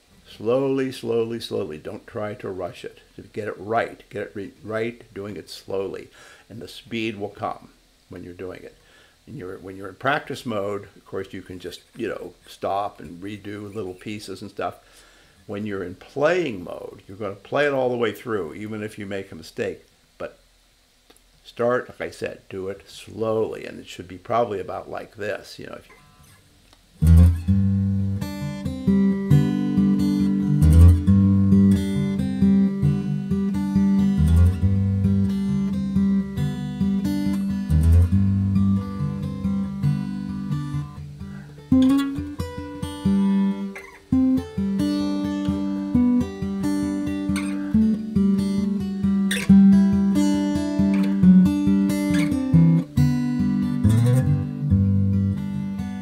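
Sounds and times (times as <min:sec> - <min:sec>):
acoustic guitar fingerpicked: 0:25.9 - 0:26.4, 0:27.0 - 0:56.0.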